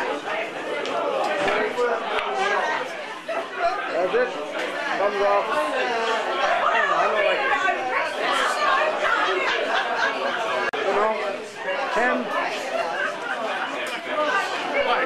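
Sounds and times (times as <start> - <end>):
people talking indistinctly: 0.0 - 15.0.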